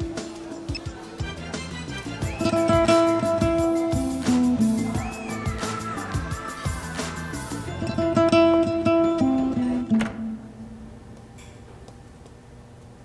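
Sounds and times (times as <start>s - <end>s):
plucked guitar music: 0.0s - 10.9s.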